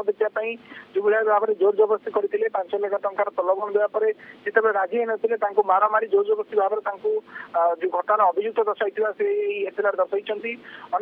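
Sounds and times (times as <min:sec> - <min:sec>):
man speaking over telephone: 0:00.0 - 0:11.0.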